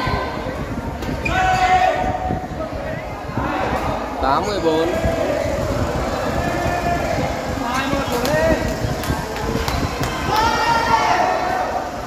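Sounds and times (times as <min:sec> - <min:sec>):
low indoor hall rumble: 0:00.0 - 0:12.0.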